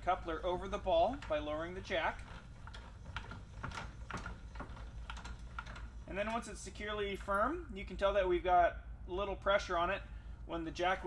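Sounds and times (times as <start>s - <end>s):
jack crank clicking: 0.0s - 6.5s.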